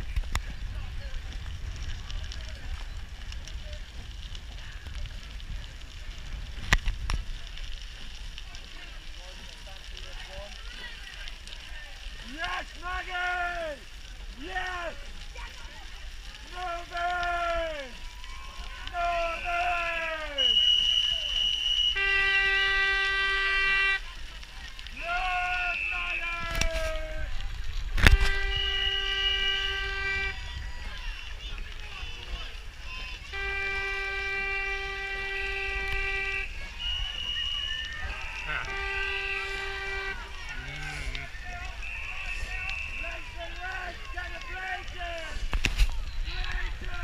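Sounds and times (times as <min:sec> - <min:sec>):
supporters shouting: 0:16.5 - 0:24.1, 0:24.9 - 0:27.4, 0:28.1 - 0:45.4
shrill whistle blasts: 0:19.2 - 0:22.8, 0:25.4 - 0:26.6, 0:36.0 - 0:40.2, 0:41.7 - 0:43.4
long horn blasts: 0:21.8 - 0:24.1, 0:28.0 - 0:30.5, 0:33.3 - 0:37.3, 0:38.0 - 0:42.9.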